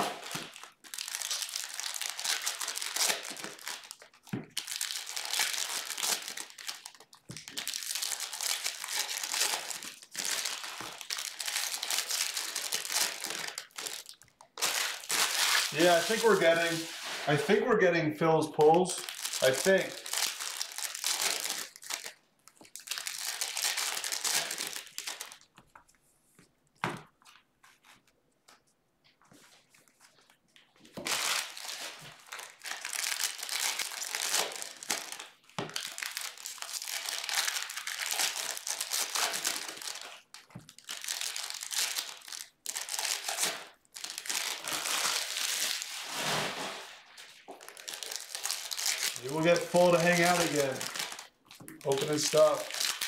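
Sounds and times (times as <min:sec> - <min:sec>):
foil wrappers crinkling and tearing: 0:00.0 - 0:17.7, 0:18.6 - 0:25.7, 0:29.7 - 0:53.0.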